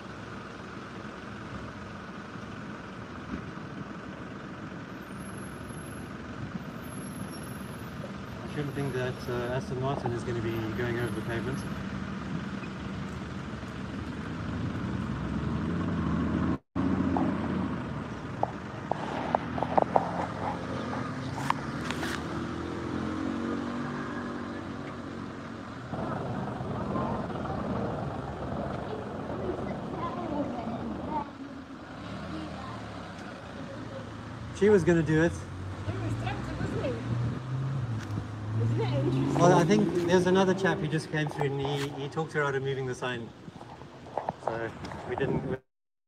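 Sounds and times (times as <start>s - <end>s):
car engines in traffic: 0.0s - 45.6s
indistinct voices: 25.9s - 35.2s.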